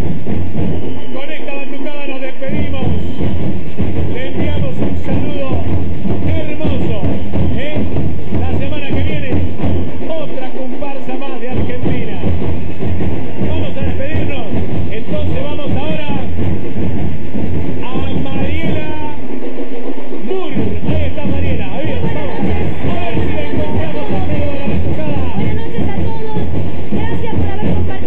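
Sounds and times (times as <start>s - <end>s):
deep bass drums: 0.0s - 28.0s
drum band playing: 0.0s - 28.0s
voices singing: 20.3s - 28.0s.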